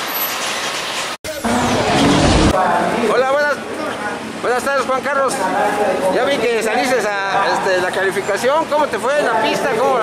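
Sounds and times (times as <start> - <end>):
outdoor background noise: 0.0 - 10.0
high whoosh falling in pitch: 1.3 - 2.6
deep rumble: 1.3 - 2.7.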